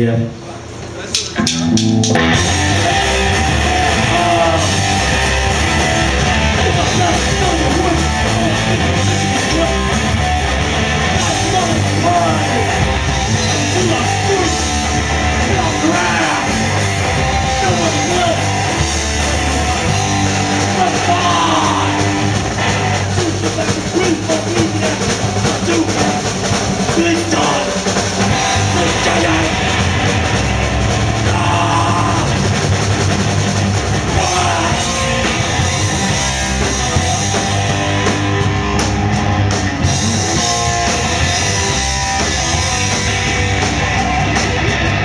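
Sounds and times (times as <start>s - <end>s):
punk band playing live: 0.6s - 45.0s
person singing into microphone: 34.1s - 35.3s.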